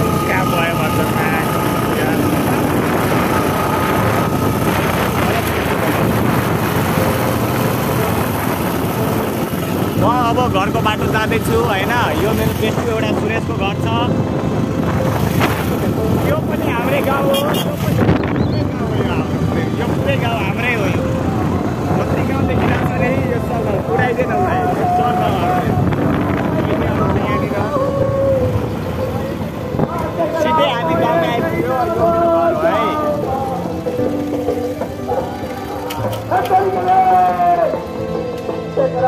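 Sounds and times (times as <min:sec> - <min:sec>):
wind buffeting microphone: 0:00.0 - 0:34.0
men shouting and talking: 0:00.0 - 0:39.0
motorcycle road noise: 0:00.0 - 0:39.0.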